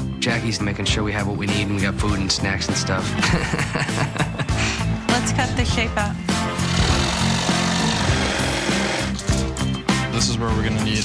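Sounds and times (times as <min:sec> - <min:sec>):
background music: 0:00.0 - 0:11.0
electric jigsaw cutting plywood: 0:06.6 - 0:09.2.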